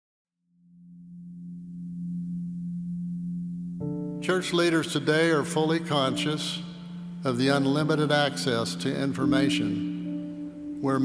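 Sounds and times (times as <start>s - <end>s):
low musical drone: 0.7s - 11.0s.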